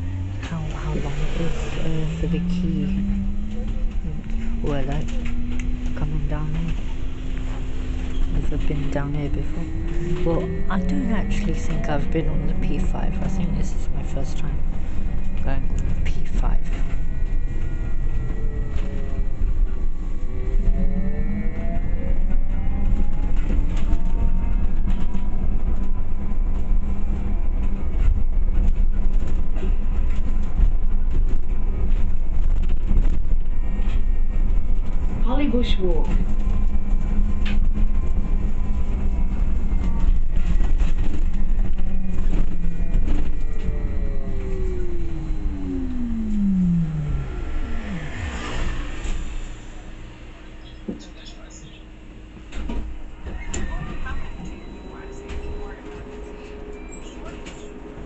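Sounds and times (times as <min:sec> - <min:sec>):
bus motor whine: 0:00.0 - 0:58.0
bus road rumble: 0:00.0 - 0:58.0.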